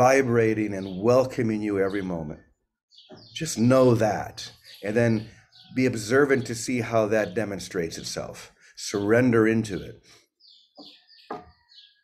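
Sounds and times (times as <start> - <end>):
bird chirping: 0.0 - 12.0
soft knocks: 10.8 - 11.6.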